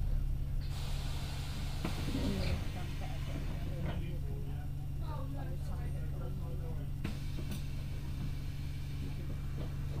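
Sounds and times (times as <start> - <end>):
bus diesel engine idling: 0.0 - 10.0.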